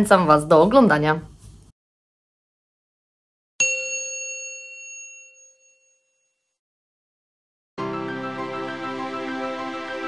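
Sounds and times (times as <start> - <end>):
bright bell-like chime: 3.6 - 6.6.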